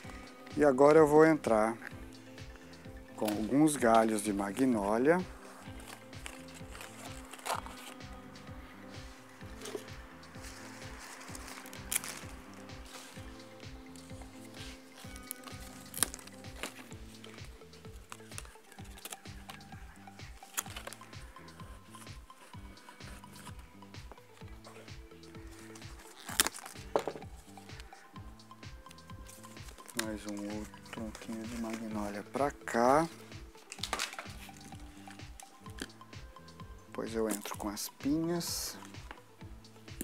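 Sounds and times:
soft background music: 0.0s - 40.0s.

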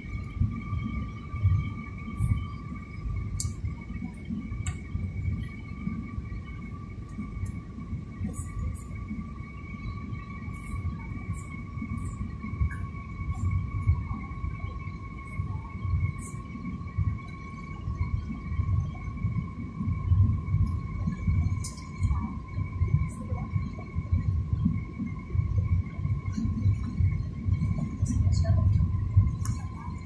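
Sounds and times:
jet engines rumbling: 0.0s - 30.0s
steady whine: 0.0s - 30.0s
faint high ticks: 3.4s - 3.6s.

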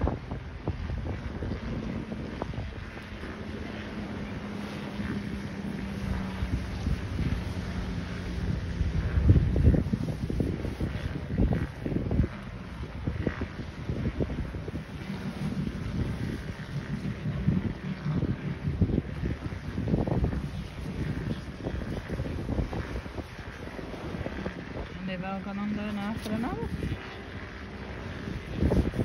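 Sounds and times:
jet ski engine drone: 0.0s - 29.0s
wind buffeting microphone: 0.0s - 29.0s.

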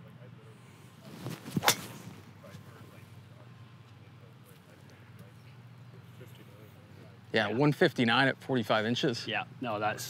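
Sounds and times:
golf club whoosh: 1.2s - 2.2s
golf club striking ball: 1.5s - 2.0s.

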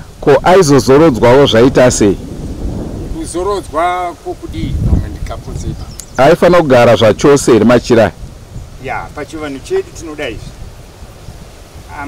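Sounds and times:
wind buffeting microphone: 0.0s - 12.0s
man speaking: 0.2s - 2.2s, 3.1s - 8.2s, 8.8s - 10.6s.

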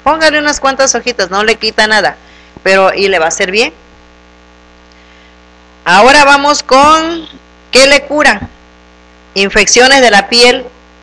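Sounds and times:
woman speaking: 0.0s - 3.8s, 5.9s - 8.6s, 9.4s - 10.8s
electrical mains hum: 0.0s - 11.0s.

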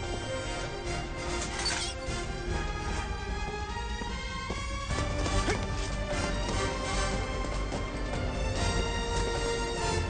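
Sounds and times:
action film score: 0.0s - 10.0s.

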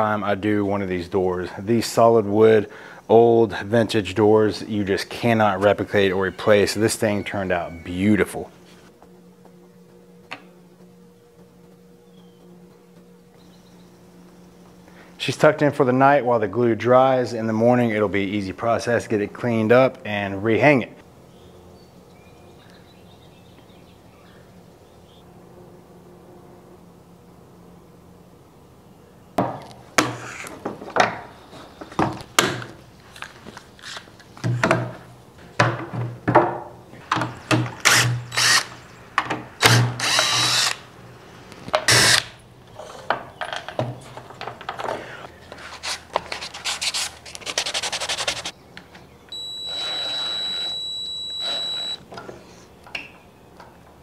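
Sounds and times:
cordless drill driving screws: 37.8s - 38.8s, 39.6s - 40.8s, 41.9s - 42.2s, 49.4s - 52.0s.

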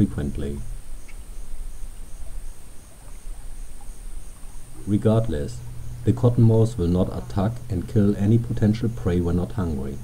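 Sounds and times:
insect pulsed chirp: 0.0s - 10.0s
insects buzzing: 0.0s - 10.0s
low ambient rumble: 0.0s - 10.0s.

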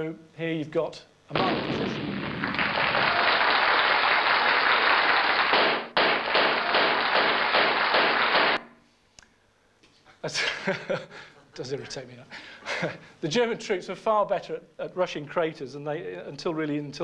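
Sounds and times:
explosion sound effect over speakers: 1.3s - 3.2s
speaker crackle: 1.3s - 3.6s.

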